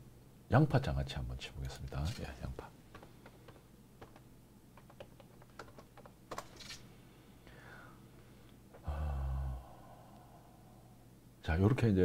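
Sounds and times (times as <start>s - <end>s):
computer keyboard typing: 2.9s - 4.2s, 4.8s - 6.7s.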